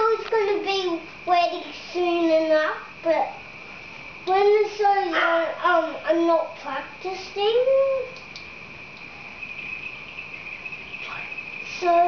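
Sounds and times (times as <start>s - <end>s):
faint room noise: 0.0s - 12.0s
steady high-pitched tone: 8.7s - 12.0s.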